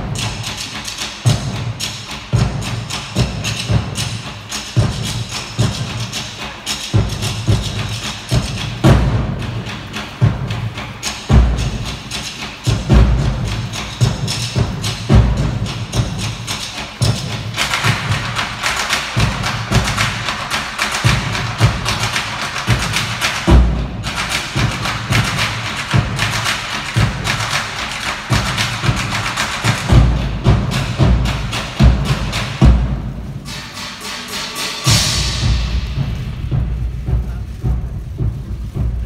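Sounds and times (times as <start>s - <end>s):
deep drum strikes: 0.0s - 39.0s
heavy drum strikes: 0.0s - 39.0s
live ensemble music: 0.0s - 39.0s.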